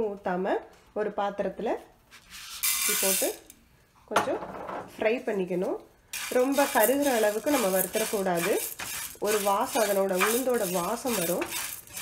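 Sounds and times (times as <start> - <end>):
dry lentils rattling in a pan: 2.6 - 3.4, 6.2 - 12.0
person talking: 5.0 - 11.5.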